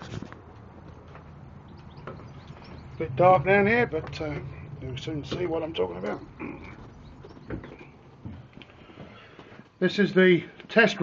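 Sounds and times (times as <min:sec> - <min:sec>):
faint footsteps: 0:00.0 - 0:10.8
low steady hum: 0:00.6 - 0:09.4.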